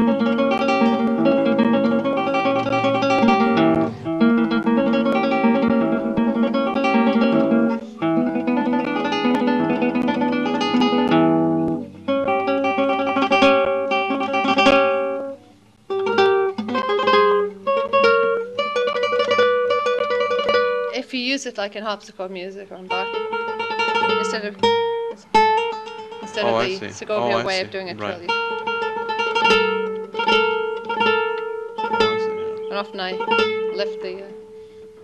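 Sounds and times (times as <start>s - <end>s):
classical guitar fingerstyle trill: 0.0s - 35.0s.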